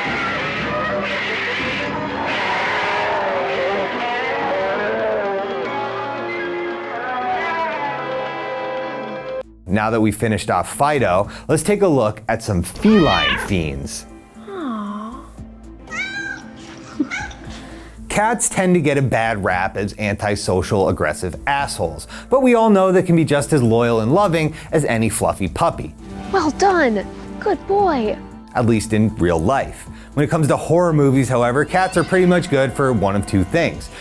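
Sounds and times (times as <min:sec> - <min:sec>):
background music: 0:00.0 - 0:34.0
cat meowing: 0:12.8 - 0:13.7, 0:15.9 - 0:17.5.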